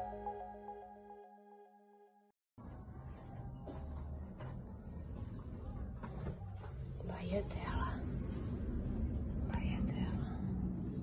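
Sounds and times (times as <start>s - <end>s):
steady low rumble: 7.4s - 11.0s.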